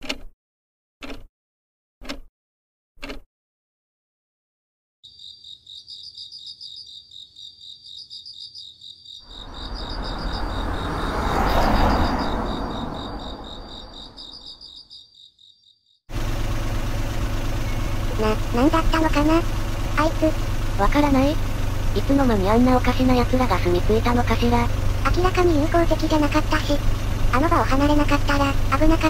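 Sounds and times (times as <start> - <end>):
crickets chirping: 5.1 - 15.9
rushing noise: 9.3 - 14.6
car engine drone from inside: 9.3 - 14.7, 16.1 - 29.0.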